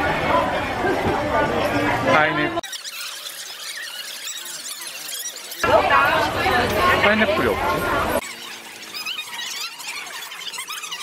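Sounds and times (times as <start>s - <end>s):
high-pitched chirps and squeaks: 2.6s - 6.8s, 8.2s - 11.0s.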